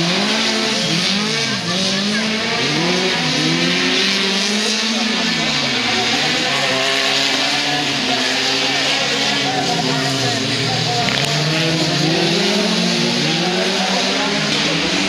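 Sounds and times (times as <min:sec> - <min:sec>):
race car engines revving: 0:00.0 - 0:15.0.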